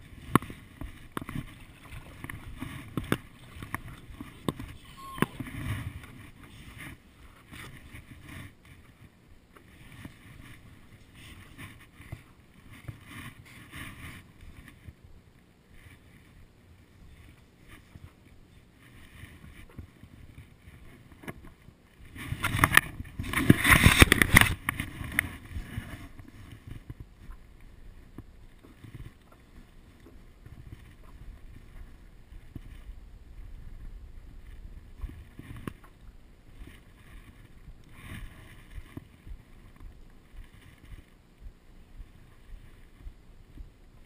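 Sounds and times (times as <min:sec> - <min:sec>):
water lapping and knocks: 0:00.0 - 0:44.0.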